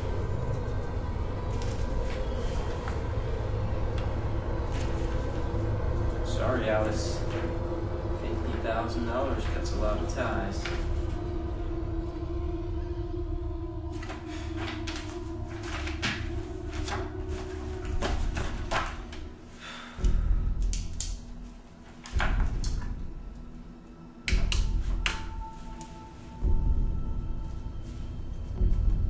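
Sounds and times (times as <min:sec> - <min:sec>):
tense film score drone: 0:00.0 - 0:29.0
papers rustling: 0:13.9 - 0:19.8
deep booming hits: 0:22.2 - 0:23.7.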